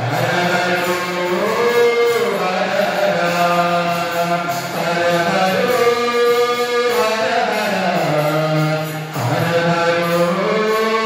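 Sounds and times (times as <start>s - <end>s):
voices singing devotional song: 0.0s - 11.0s.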